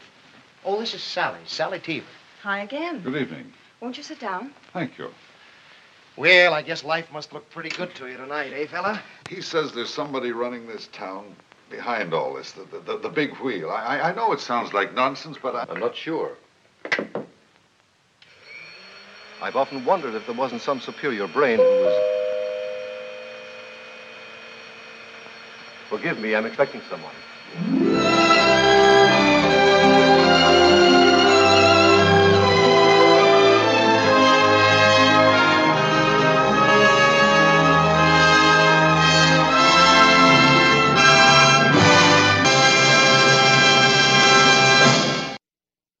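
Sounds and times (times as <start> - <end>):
orchestral music sustained chord: 21.6 - 23.5, 27.5 - 44.3
two-note door chime: 21.6 - 23.7.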